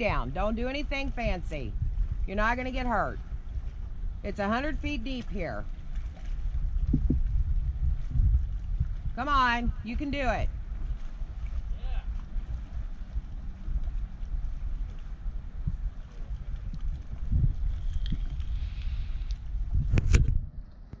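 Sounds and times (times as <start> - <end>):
steady low rumble: 0.0 - 21.0
wind buffeting microphone: 0.0 - 21.0.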